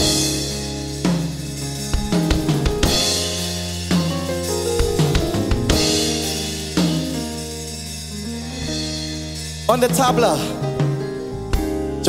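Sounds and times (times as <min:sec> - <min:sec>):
crash cymbal and bass drum hits: 0:00.0 - 0:09.7
band holding notes: 0:00.0 - 0:12.0.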